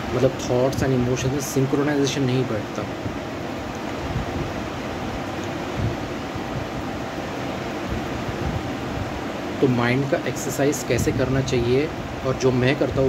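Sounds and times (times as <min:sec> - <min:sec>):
constant even hiss: 0:00.0 - 0:13.0.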